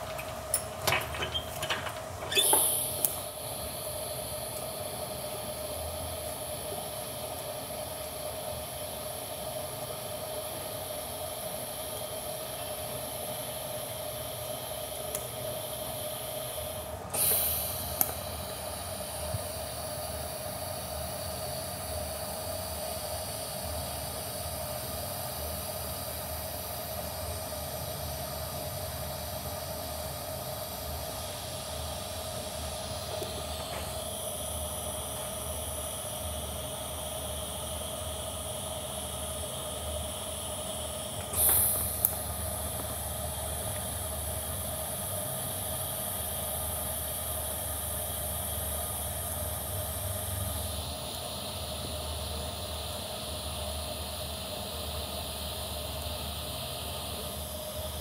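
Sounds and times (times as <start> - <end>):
welding arc hissing: 0.0 - 58.0.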